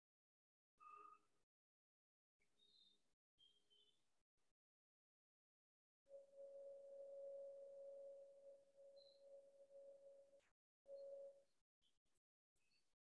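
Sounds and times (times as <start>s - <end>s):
faint steady ringing tone: 6.1s - 11.6s.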